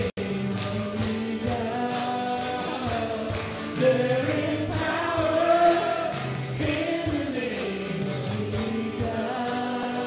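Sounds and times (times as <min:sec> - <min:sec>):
acoustic guitars: 0:00.0 - 0:10.0
drum kit beat: 0:00.0 - 0:10.0
group singing: 0:00.0 - 0:10.0.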